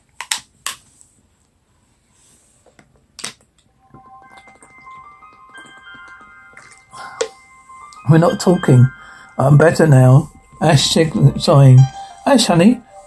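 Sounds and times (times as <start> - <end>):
score with held notes: 4.0 - 13.0.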